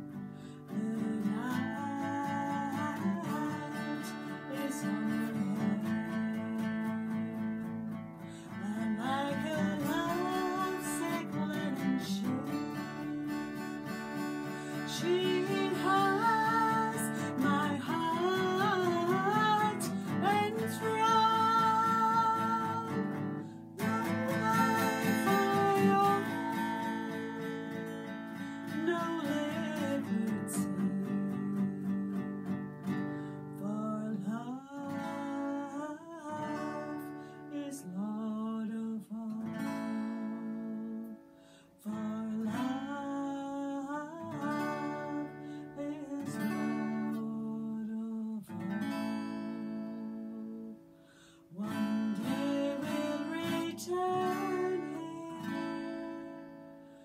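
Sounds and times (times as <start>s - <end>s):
woman singing: 0.0s - 50.9s, 51.5s - 56.8s
acoustic guitar ballad: 0.0s - 57.0s.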